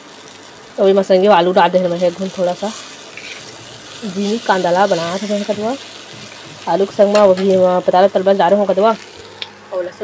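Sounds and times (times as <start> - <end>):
food sizzling in oil: 0.0 - 10.0
spatula stirring in pan: 1.8 - 8.1.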